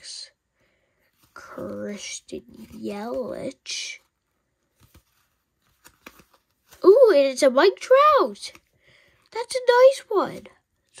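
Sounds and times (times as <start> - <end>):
cards shifting soft ticks: 1.0 - 6.8.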